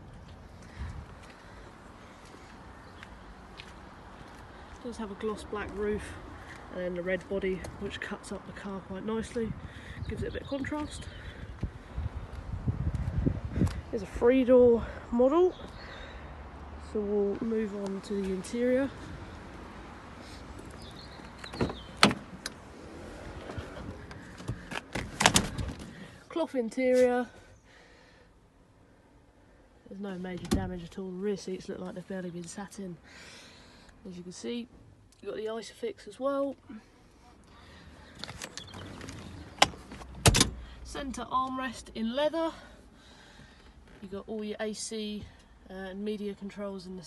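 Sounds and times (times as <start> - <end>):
rustling inside car cabin: 20.6 - 26.2, 37.9 - 40.6
car door latch click: 39.6 - 40.6.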